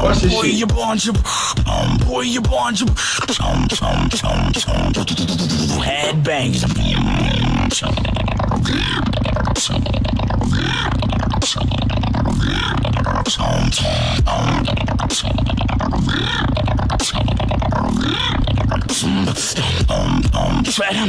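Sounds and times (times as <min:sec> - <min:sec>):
beatboxing mouth bass: 0:00.0 - 0:21.0
beatboxing snare-like clicks: 0:00.6 - 0:05.8, 0:07.7 - 0:21.0.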